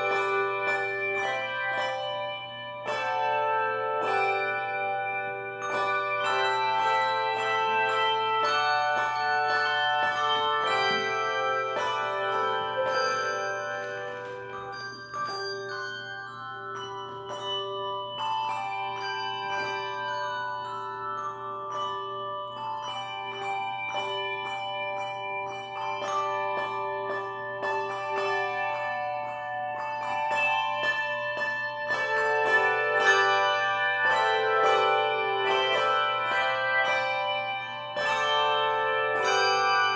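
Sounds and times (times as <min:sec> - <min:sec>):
handbells ringing: 0:00.0 - 0:39.9
low bell sounding: 0:00.0 - 0:39.9.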